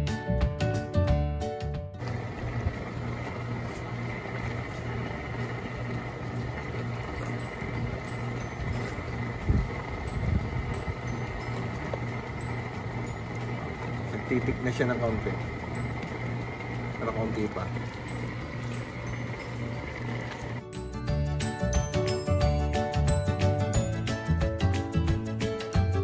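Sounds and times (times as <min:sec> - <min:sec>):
background music: 0:00.0 - 0:26.0.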